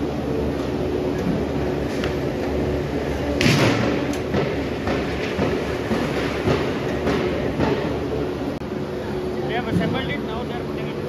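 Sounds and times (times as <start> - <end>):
factory machinery hum: 0.0 - 11.0
machinery clanks and knocks: 0.5 - 8.6, 9.5 - 11.0.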